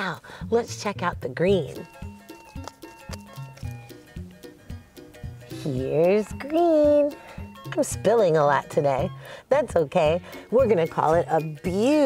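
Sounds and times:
light bouncy music with bass: 0.0 - 12.0.

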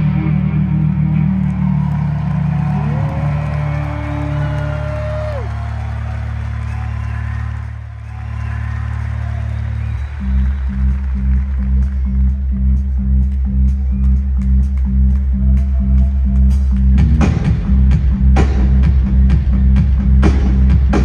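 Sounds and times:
held guitar chord drone: 0.0 - 1.9.

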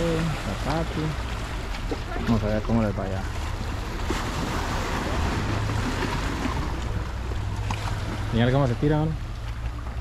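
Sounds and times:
waves breaking on rocks: 0.0 - 10.0.

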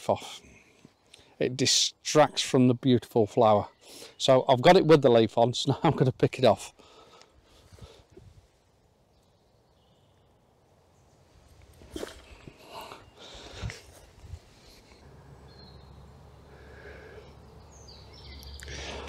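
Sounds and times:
soft rustles: 13.6 - 15.0.

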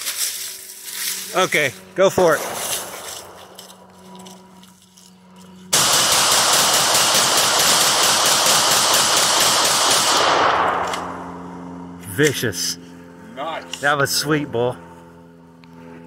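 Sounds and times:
rapid shotgun fire: 2.3 - 3.7, 5.7 - 11.4
rifle firing: 2.3 - 3.9, 5.7 - 11.5.

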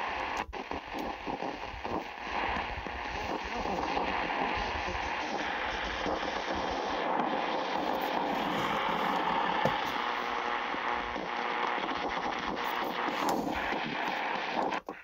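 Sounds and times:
radio static hiss: 0.0 - 15.0
static crackles: 0.0 - 15.0.

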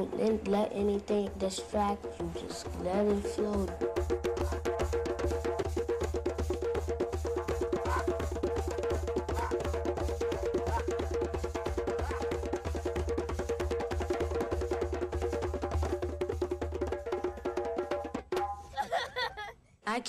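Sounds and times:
hand drums fast rhythm: 0.0 - 18.6.

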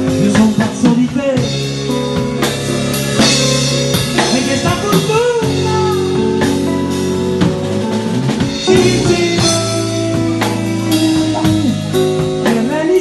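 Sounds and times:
drum kit with cymbal hits: 0.0 - 13.0
electric bass notes: 0.0 - 13.0
guitar: 0.0 - 13.0.

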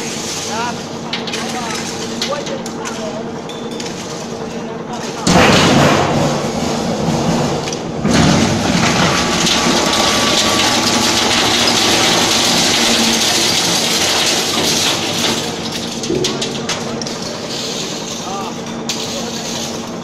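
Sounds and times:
metal shredder tearing metal: 0.0 - 3.2, 3.8 - 20.0.

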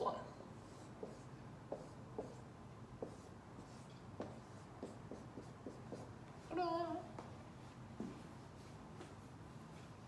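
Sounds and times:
marker writing on whiteboard: 0.0 - 6.7, 8.0 - 10.0.

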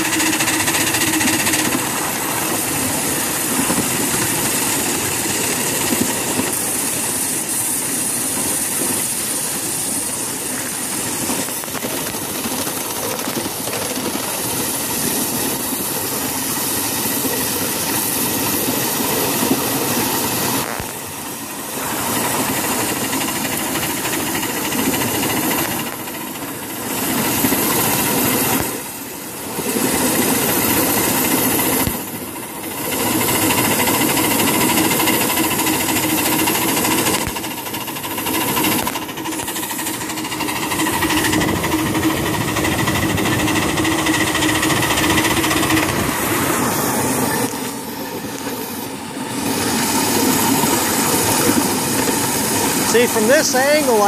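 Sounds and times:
miniature steam locomotive running: 0.0 - 54.0.

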